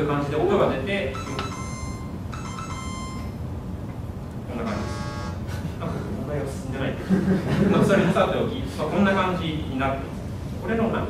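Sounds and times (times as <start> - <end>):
synthesized chime notes: 1.2 - 3.4.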